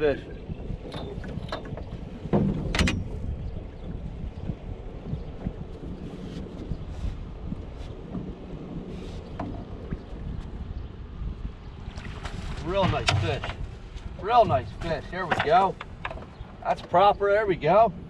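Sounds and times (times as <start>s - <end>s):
water washing around boat: 0.0s - 18.0s
wind buffeting microphone: 0.0s - 18.0s
sharp knocks on boat: 0.9s - 3.3s, 12.0s - 16.4s.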